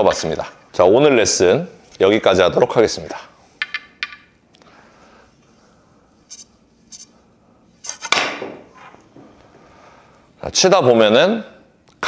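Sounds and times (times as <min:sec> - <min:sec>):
billiard balls clicking: 0:03.6 - 0:04.4
cue striking ball: 0:08.2 - 0:08.9.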